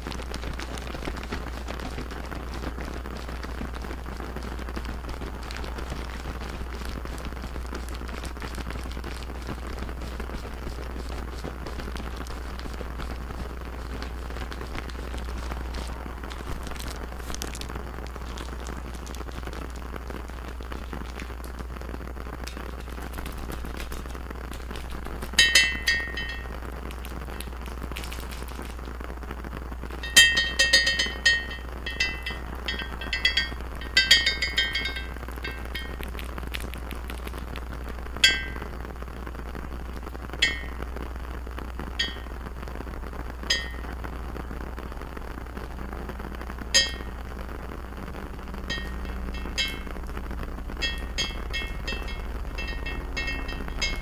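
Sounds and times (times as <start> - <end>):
glass bottle tapping: 25.4 - 26.5, 30.0 - 36.2, 38.2 - 38.7, 40.4 - 40.9, 42.0 - 42.3, 43.5 - 44.0, 46.8 - 47.2, 48.7 - 50.0, 50.8 - 54.0
low hum: 29.9 - 36.9, 43.5 - 54.0.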